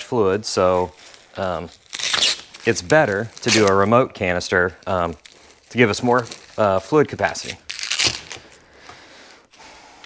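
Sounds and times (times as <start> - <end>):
packaging crackling rustle: 0.5 - 8.8.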